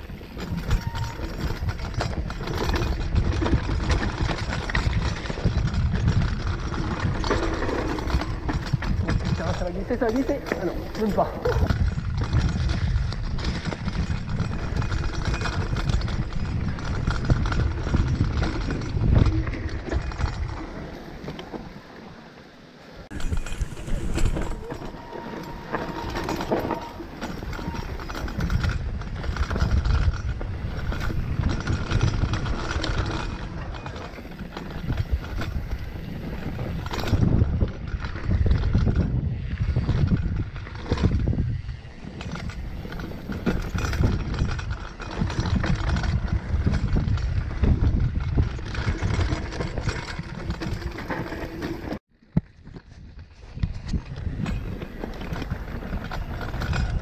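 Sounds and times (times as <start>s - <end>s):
wind buffeting microphone: 0.0s - 21.7s, 23.0s - 57.0s
bike knocking and rattling: 0.0s - 57.0s
bike tyres rumbling over dirt: 0.0s - 57.0s.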